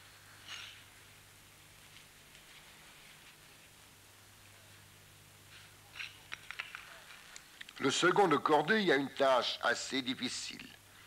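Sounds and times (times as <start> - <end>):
faint low hum and hiss: 0.0 - 11.0.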